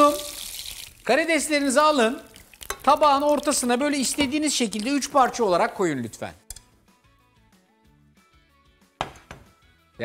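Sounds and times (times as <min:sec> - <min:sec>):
utensils knocking on worktop: 0:09.0 - 0:09.5.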